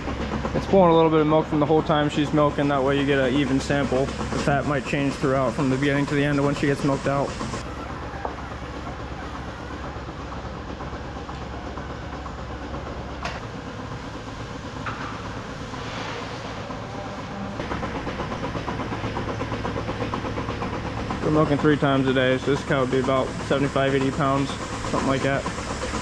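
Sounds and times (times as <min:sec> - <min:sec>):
milking machinery humming: 0:00.0 - 0:26.0
milking units hissing and pulsing: 0:00.0 - 0:26.0.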